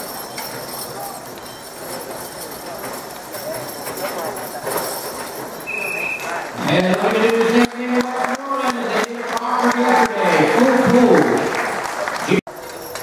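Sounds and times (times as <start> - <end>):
murmur of crowd chatter: 0.0 - 13.0.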